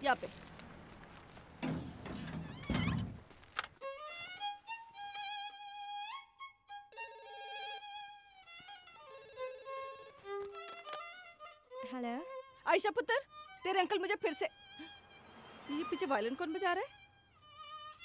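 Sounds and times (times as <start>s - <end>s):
violin playing slow melody: 3.8s - 12.7s, 13.3s - 18.0s.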